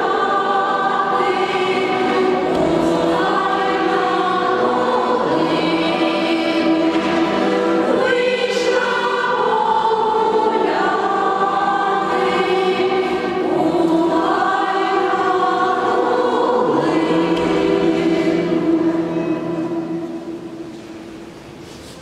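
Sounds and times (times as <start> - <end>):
women's choir singing: 0.0 - 20.7.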